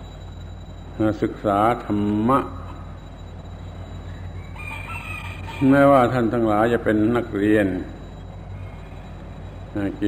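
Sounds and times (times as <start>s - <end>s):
low recording hum: 0.0s - 10.0s
faint drawn-out animal call: 4.0s - 6.0s.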